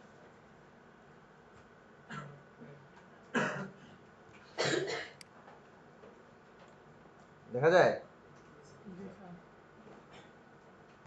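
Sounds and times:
person coughing: 3.4s - 3.9s, 4.6s - 5.2s.

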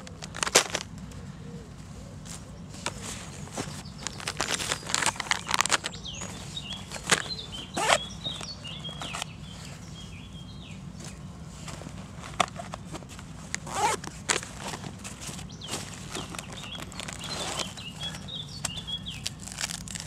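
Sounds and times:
sharp clicks of items handled: 0.0s - 1.2s, 2.3s - 9.3s
small bird chirping: 2.8s - 11.3s, 15.4s - 20.0s
plastic packet crinkling: 4.0s - 6.0s, 19.1s - 20.0s
fabric rustling: 11.0s - 20.0s.

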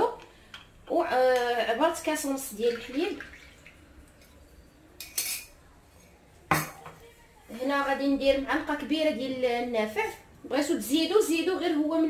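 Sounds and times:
metal spoon clinking on glass: 5.0s - 5.6s.

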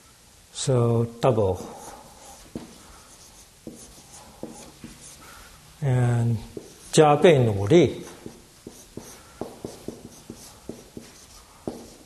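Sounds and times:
marker writing on whiteboard: 1.6s - 5.4s, 6.4s - 12.0s.

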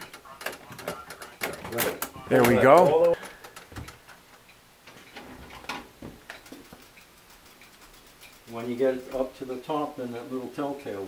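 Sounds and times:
clockwork mechanical clicks: 6.3s - 9.4s.

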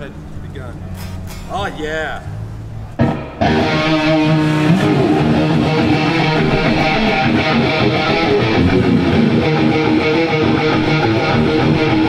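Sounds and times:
loud electric guitars playing: 2.9s - 12.0s.

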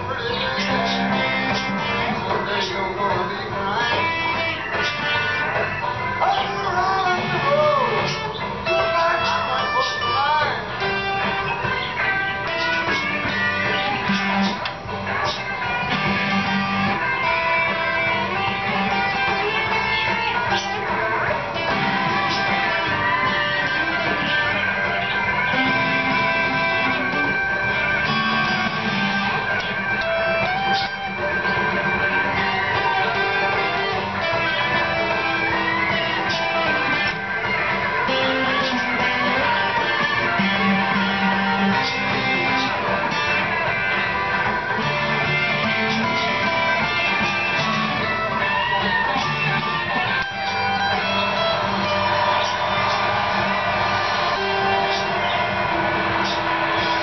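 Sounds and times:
electric guitar playing blues: 0.0s - 57.0s.

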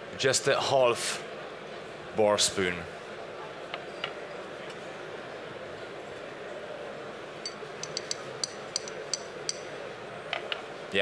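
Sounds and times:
murmur of hall noise: 0.0s - 11.0s
bar spoon clinking glass: 7.4s - 9.7s.

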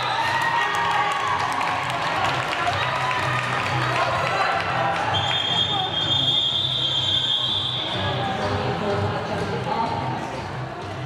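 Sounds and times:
crowd noise: 0.0s - 11.0s
referee's whistle long blast: 5.2s - 7.9s.

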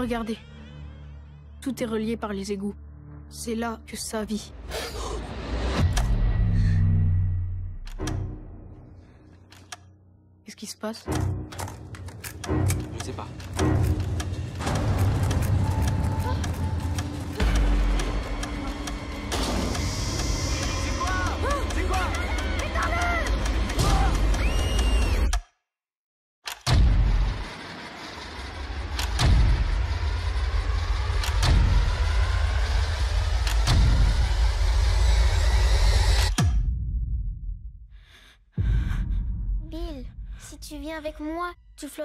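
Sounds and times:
low rumbling drone: 26.7s - 40.6s.

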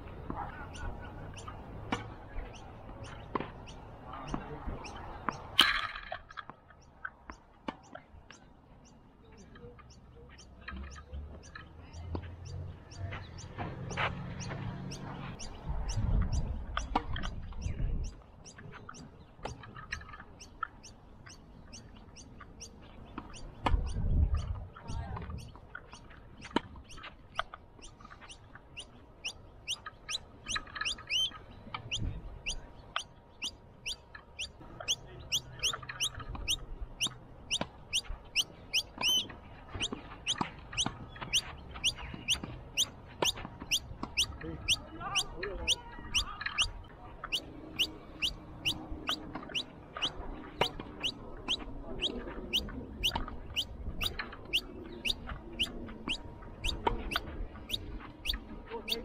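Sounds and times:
bird chirping: 0.0s - 5.6s, 6.3s - 59.0s.

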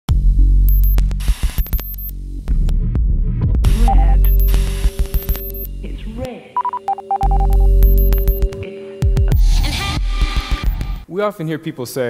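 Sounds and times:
electronic music with bass pulses: 0.1s - 6.3s, 7.2s - 11.0s
short digital beeps: 0.7s - 1.0s, 1.6s - 2.1s, 3.9s - 5.8s, 6.6s - 9.4s.

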